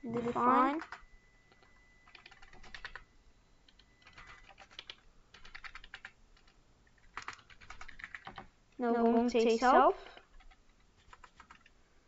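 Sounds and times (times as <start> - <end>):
faint keyboard typing: 0.7 - 11.8.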